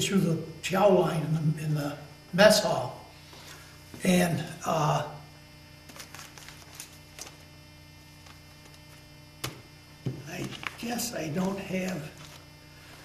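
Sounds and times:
electrical mains hum: 0.0 - 13.0.

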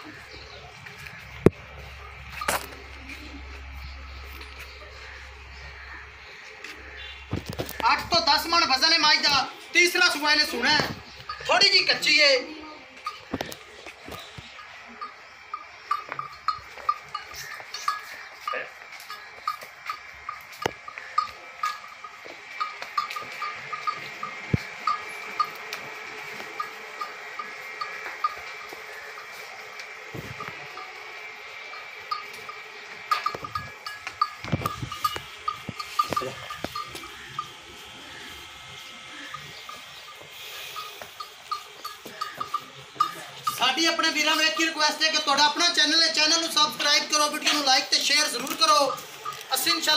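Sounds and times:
livestock bell jingling: 0.0 - 49.9.

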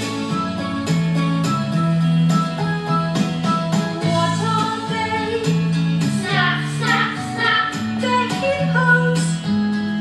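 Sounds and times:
instrumental backing with beat: 0.0 - 10.0
person singing children's song: 6.2 - 9.4.

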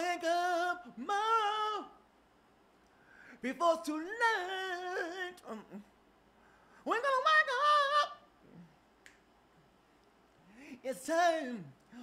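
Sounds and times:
man singing a cappella: 0.0 - 2.0, 3.3 - 5.9, 6.8 - 8.7, 10.5 - 12.0.

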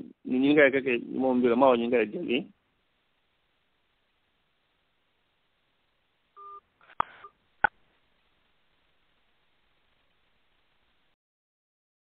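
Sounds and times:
two-tone electronic beep: 6.4 - 6.6.

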